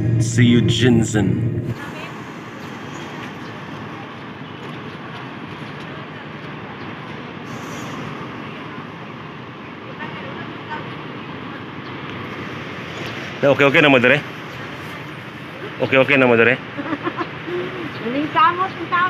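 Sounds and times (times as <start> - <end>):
coaches idling: 0.0 - 19.0.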